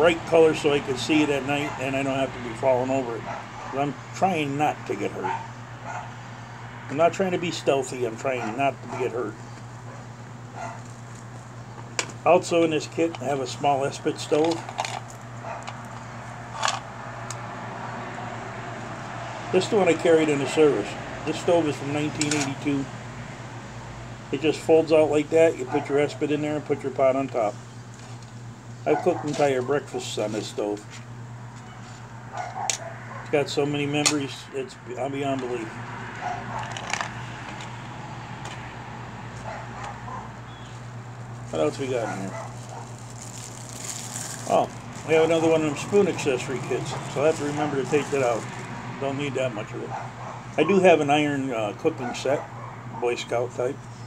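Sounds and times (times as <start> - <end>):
steady low hum: 0.0 - 54.0
dog barking faintly: 8.3 - 9.3, 28.9 - 29.8, 41.9 - 42.9
machine hum: 29.9 - 50.6
handling rustle: 40.7 - 48.8.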